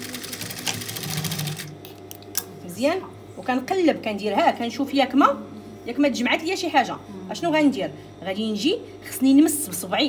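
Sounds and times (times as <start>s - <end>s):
sewing machine stitching: 0.0s - 1.7s.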